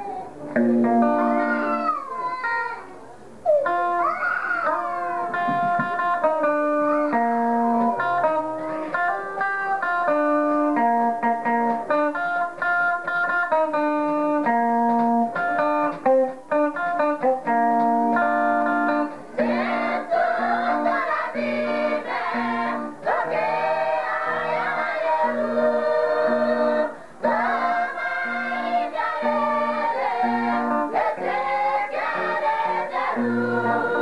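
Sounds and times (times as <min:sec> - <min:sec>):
guitar melody: 0:00.0 - 0:01.9, 0:03.5 - 0:34.0
group of voices singing: 0:19.4 - 0:34.0.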